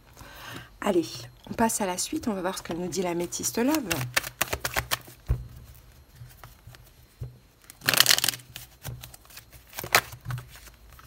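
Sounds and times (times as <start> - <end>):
cards shuffling: 3.2 - 5.2, 7.6 - 11.0.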